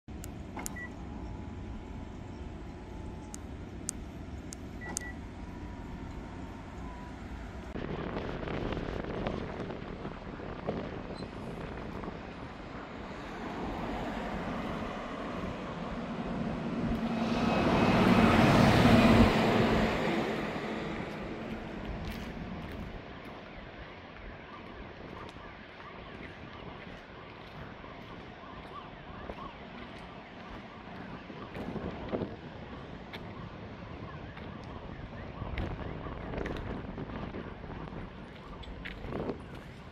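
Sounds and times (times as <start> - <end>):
vehicle passing close by: 13.0 - 22.6.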